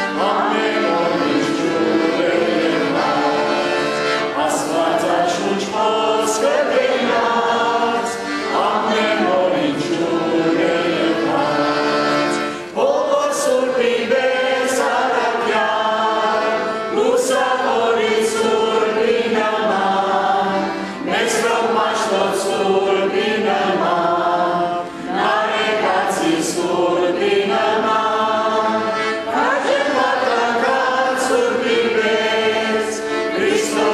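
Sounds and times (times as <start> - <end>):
liturgical chant singing: 0.0 - 33.9.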